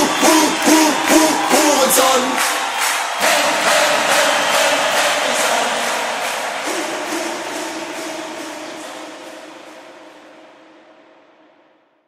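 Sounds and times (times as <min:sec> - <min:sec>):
party band song: 0:00.0 - 0:10.6.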